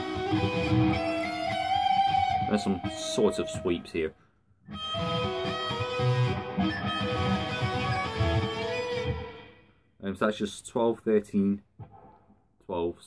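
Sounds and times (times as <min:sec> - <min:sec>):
electric guitar sweep-picked arpeggios: 0:00.0 - 0:03.8, 0:04.7 - 0:09.6.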